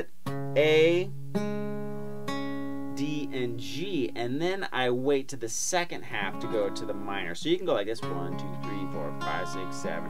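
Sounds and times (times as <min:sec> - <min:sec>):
acoustic guitar chord picked: 0:00.2 - 0:04.4, 0:06.1 - 0:10.0.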